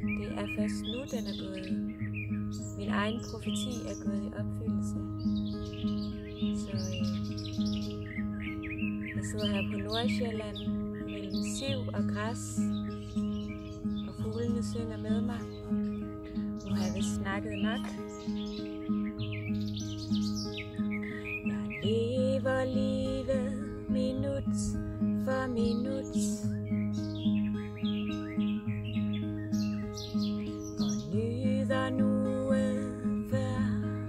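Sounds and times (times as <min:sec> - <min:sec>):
acoustic guitar playing: 0:00.0 - 0:34.0
small birds chirping: 0:00.0 - 0:34.0
person singing: 0:21.5 - 0:26.5, 0:31.0 - 0:34.0.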